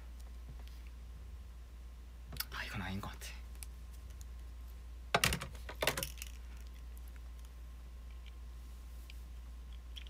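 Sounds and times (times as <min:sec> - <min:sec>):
steady low hum: 0:00.0 - 0:10.0
glasses clicks and handling: 0:05.2 - 0:06.8.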